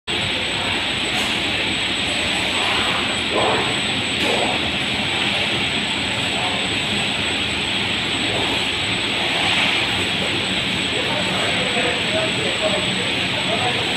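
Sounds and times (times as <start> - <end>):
faint voices: 0.1 - 13.9
printing press rollers hissing: 0.1 - 13.9
thin high whine: 0.1 - 13.9.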